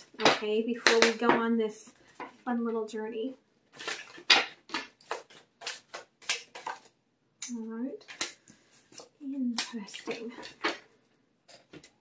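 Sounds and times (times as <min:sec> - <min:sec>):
cards being shuffled: 0:03.7 - 0:07.0.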